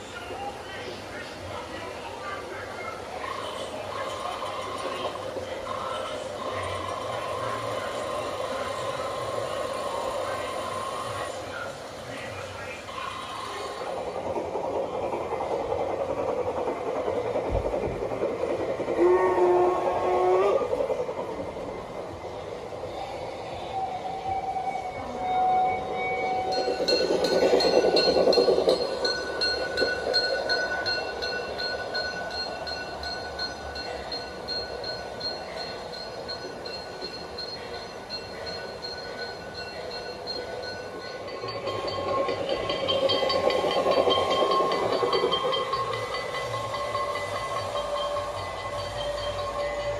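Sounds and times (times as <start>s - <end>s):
model train rolling rumble: 0.0s - 49.9s
locomotive whistle: 19.0s - 20.7s, 23.2s - 26.7s
thin high steady tone: 19.0s - 49.9s.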